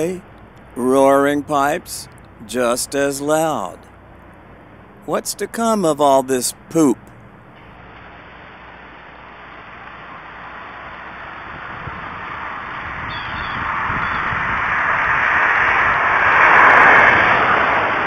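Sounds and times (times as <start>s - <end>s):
microphone hiss: 0.0s - 11.5s
car approaching: 0.0s - 13.9s.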